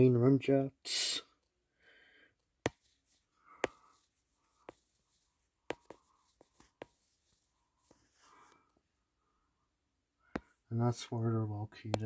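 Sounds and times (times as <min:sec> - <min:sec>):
soft rustling: 0:02.7 - 0:08.8.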